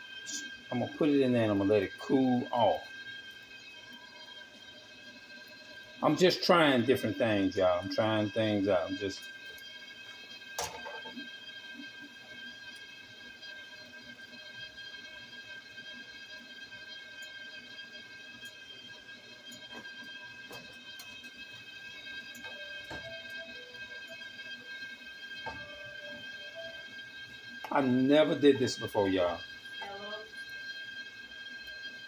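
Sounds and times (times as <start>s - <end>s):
high-pitched multi-tone whine: 0.0s - 32.0s
oil popping and crackling: 0.0s - 32.0s.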